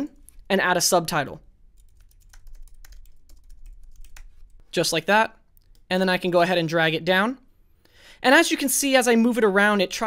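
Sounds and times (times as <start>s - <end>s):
keyboard typing: 1.7s - 4.8s.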